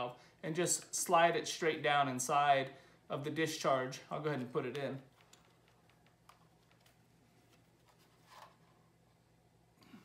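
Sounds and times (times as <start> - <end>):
low steady hum: 0.0 - 10.0
faint clicks and taps: 4.3 - 8.6
soft rustle: 5.0 - 9.1.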